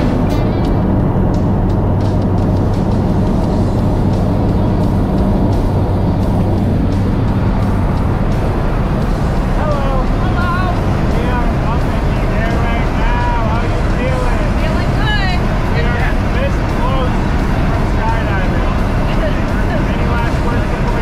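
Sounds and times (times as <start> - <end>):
rushing airflow: 0.0 - 21.0
turboprop plane engine drone: 0.0 - 21.0.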